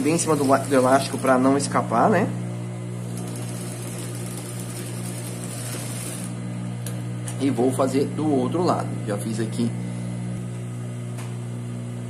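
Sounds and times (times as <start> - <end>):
sewing machine running: 0.0 - 1.7, 3.0 - 6.4.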